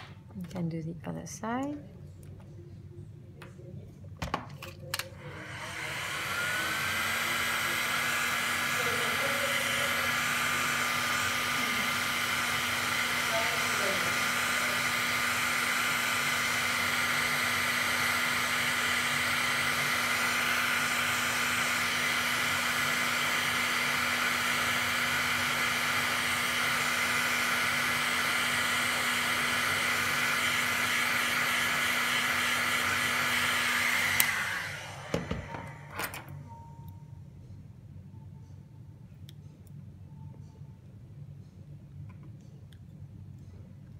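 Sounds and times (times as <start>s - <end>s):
heat gun blowing air: 5.3s - 35.9s.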